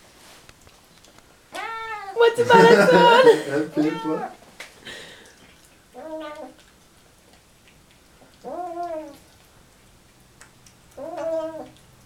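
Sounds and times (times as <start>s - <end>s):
cat meowing: 1.5s - 4.4s, 6.0s - 6.6s, 8.4s - 9.2s, 11.0s - 11.8s.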